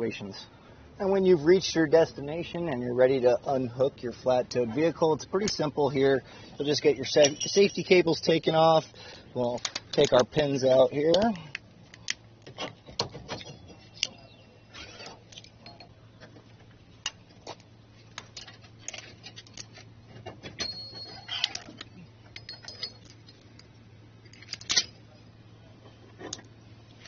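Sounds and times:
metallic clinks and rattles: 0:07.0 - 0:08.6, 0:15.0 - 0:16.0, 0:18.0 - 0:25.3.

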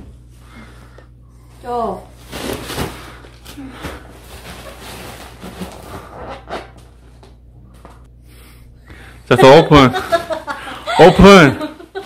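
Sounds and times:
plastic wrapping crinkling: 0:02.2 - 0:06.2.

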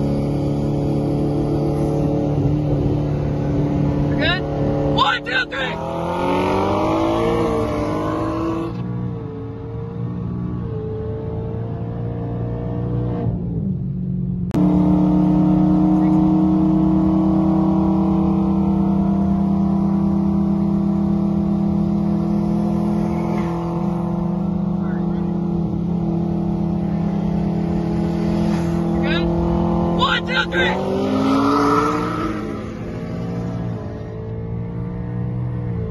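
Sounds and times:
car engine pulling hard: 0:00.0 - 0:09.7, 0:14.5 - 0:35.9.

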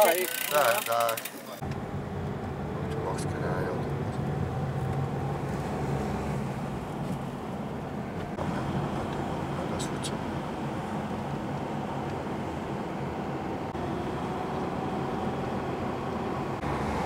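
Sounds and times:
car road and engine rumble: 0:00.0 - 0:17.0.

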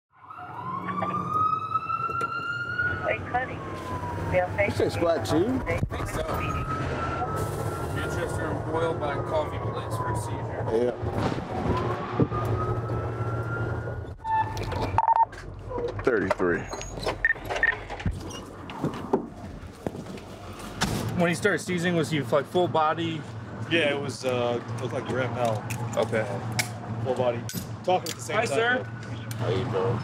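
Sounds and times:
emergency siren wailing: 0:00.1 - 0:15.3, 0:28.2 - 0:30.0
engine and road hum: 0:00.2 - 0:30.0
short electronic beeps: 0:14.2 - 0:15.3.

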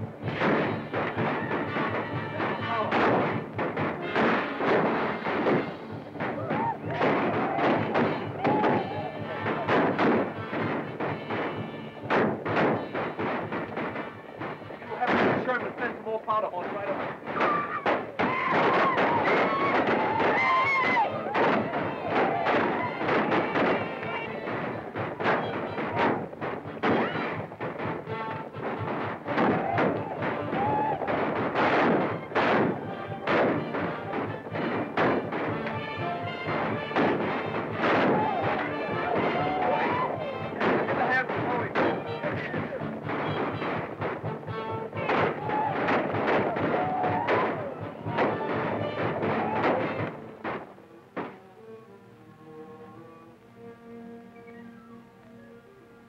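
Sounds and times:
people shouting: 0:00.0 - 0:15.9, 0:16.8 - 0:51.4
music: 0:00.0 - 0:56.0
rifle shots: 0:00.2 - 0:51.3.

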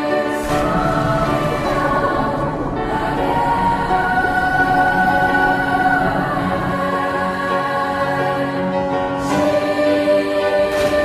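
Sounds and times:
choir singing held notes: 0:00.0 - 0:11.0.

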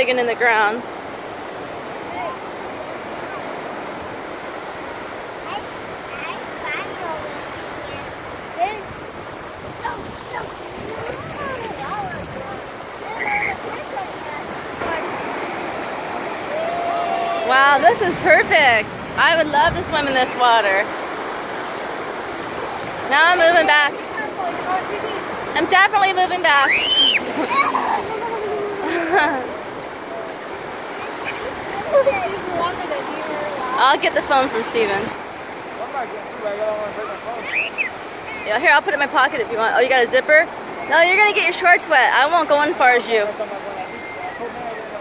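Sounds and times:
ocean surf washing up: 0:00.0 - 0:45.0
high-pitched voice cries: 0:26.7 - 0:29.1.

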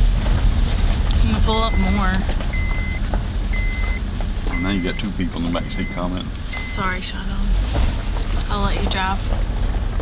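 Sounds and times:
low rumble of moving car: 0:00.0 - 0:10.0
car warning chime beeps: 0:01.4 - 0:07.4.

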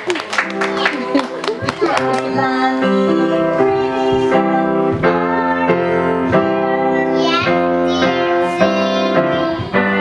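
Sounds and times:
piano playing: 0:00.0 - 0:10.0.

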